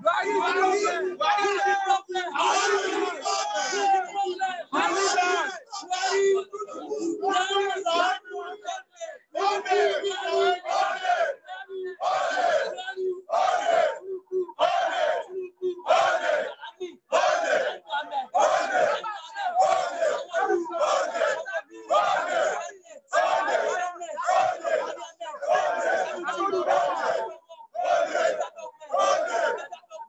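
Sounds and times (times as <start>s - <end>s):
crowd shouting: 0.0s - 30.0s
man shouting through megaphone: 0.0s - 30.0s.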